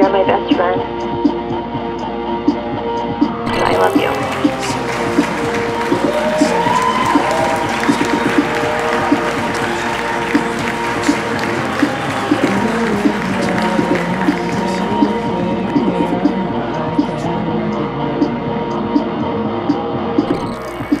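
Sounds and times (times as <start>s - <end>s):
music with long held tones: 0.0s - 21.0s
crowd applauding: 3.5s - 16.2s.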